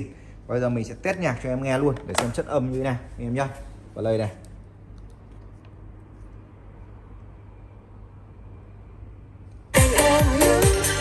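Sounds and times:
electronic dance music: 9.7s - 11.0s.

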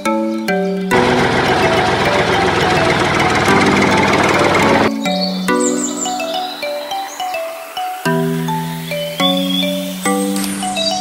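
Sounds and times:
small water pump motor buzzing: 0.9s - 4.9s.

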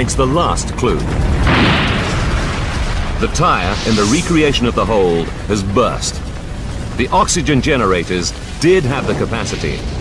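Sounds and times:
fire low rumble: 0.0s - 10.0s
tire bursting blast: 1.2s - 7.8s.

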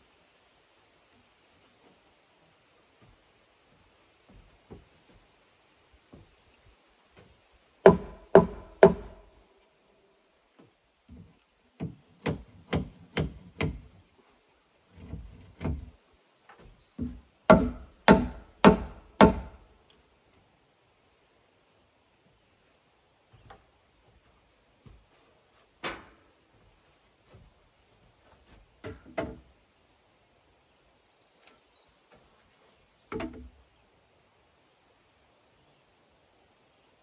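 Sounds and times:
log knocking on wooden beams: 3.0s - 5.2s, 7.2s - 9.3s, 11.1s - 14.1s, 14.9s - 15.9s, 16.6s - 19.6s, 23.3s - 29.6s, 33.0s - 33.6s.

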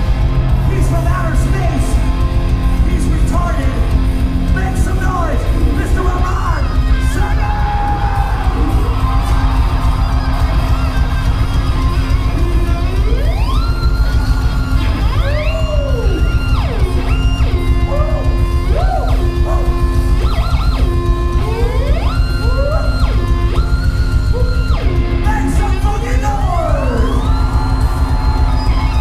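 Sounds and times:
heavy rock band playing loud: 0.0s - 29.0s
high sliding guitar notes: 0.0s - 29.0s.

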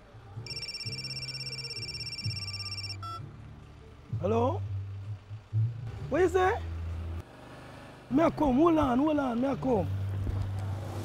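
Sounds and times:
phone ringing electronic trill: 0.5s - 3.2s.

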